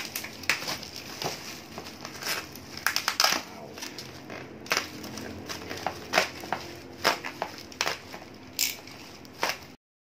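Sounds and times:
bubble wrap crackling: 0:00.0 - 0:09.8.

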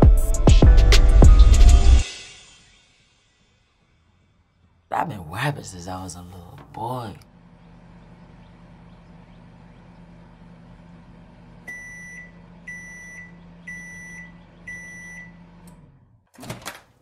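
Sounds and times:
microwave oven humming: 0:05.7 - 0:17.0
microwave beeping: 0:07.5 - 0:16.8.

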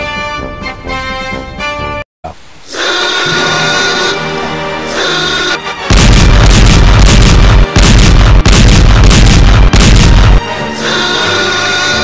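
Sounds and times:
distorted explosion booms: 0:05.9 - 0:10.4.

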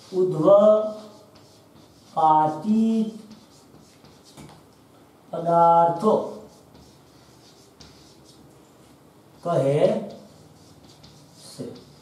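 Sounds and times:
chalk scratching on blackboard: 0:00.0 - 0:04.7, 0:05.9 - 0:12.0.

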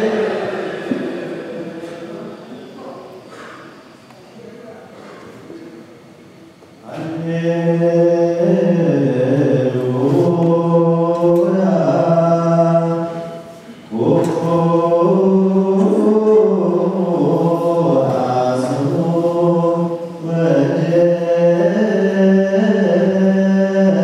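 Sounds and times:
congregation chanting a hymn: 0:00.0 - 0:03.7, 0:06.8 - 0:24.0.

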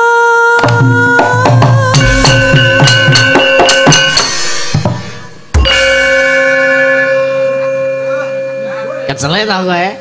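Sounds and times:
gamelan keys and gong struck: 0:02.0 - 0:09.2.

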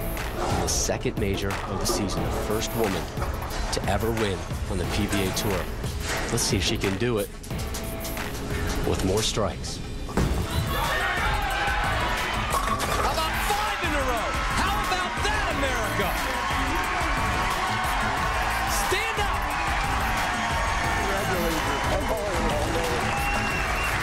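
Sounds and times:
crowd cheering and shouting: 0:10.2 - 0:24.0
bowling ball crashing into pins: 0:12.5 - 0:13.2.

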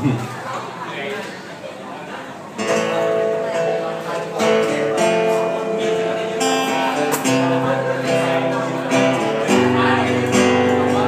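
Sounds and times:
acoustic guitar strumming: 0:02.6 - 0:11.0.

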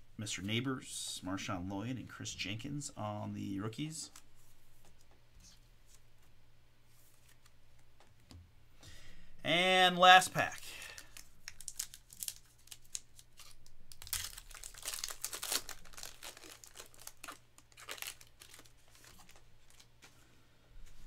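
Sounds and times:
foil wrapper tearing and crinkling: 0:10.8 - 0:19.9.

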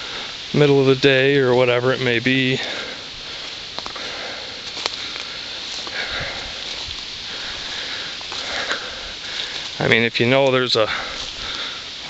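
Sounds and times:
person breathing: 0:00.0 - 0:00.5, 0:02.6 - 0:09.8, 0:10.8 - 0:12.0
footsteps through leafy undergrowth: 0:01.7 - 0:12.0
twigs snapping: 0:03.5 - 0:09.8.

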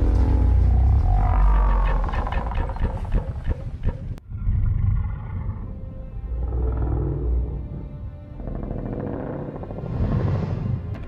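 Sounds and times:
music: 0:00.0 - 0:03.2, 0:03.8 - 0:11.0
deep rumble: 0:00.0 - 0:11.0.

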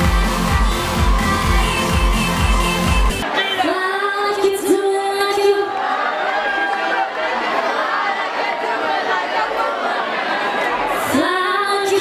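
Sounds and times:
crowd chatter: 0:01.0 - 0:12.0.

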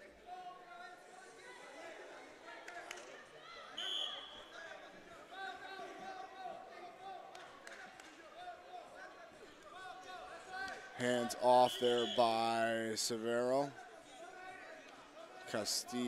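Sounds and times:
spectators and coaches voices: 0:00.0 - 0:16.0
referee's whistle: 0:03.8 - 0:04.5, 0:11.5 - 0:12.6.

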